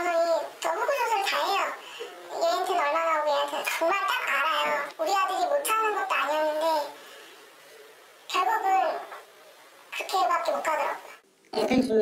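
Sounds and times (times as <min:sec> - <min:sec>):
pitch-shifted voice talking: 0:00.0 - 0:07.0, 0:08.3 - 0:09.2.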